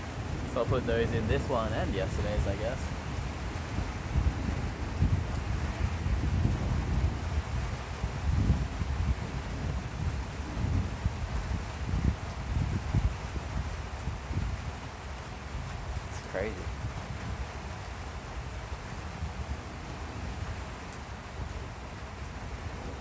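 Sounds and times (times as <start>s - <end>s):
wind gusting over microphone: 0.0s - 23.0s.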